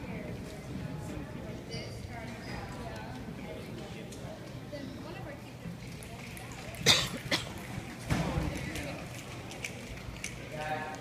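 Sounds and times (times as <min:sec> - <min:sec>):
murmur of voices: 0:00.0 - 0:11.0
person coughing: 0:06.8 - 0:07.6.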